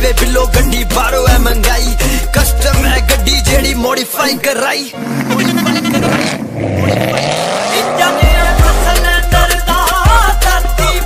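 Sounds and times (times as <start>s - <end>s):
hip-hop beat with deep bass: 0.0s - 11.0s
car engine revving: 4.9s - 9.3s.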